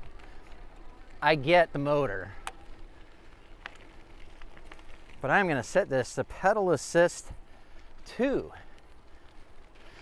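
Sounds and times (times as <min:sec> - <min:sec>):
bike tyres rolling on path: 0:00.0 - 0:10.0.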